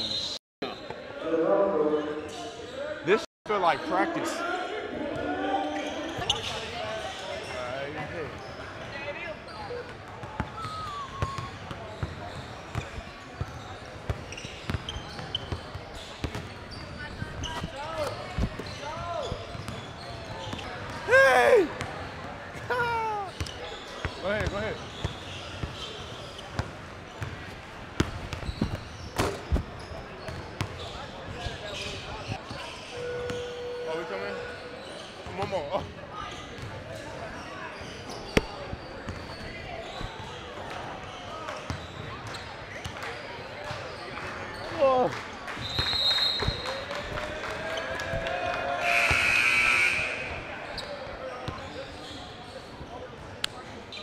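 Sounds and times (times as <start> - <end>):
sneakers squeaking on floor: 5.8 - 21.1, 21.8 - 44.8, 45.6 - 46.8, 49.0 - 53.2.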